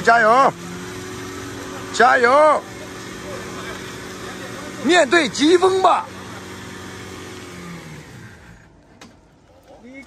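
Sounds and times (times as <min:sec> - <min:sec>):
pickup truck engine running: 0:00.0 - 0:09.0.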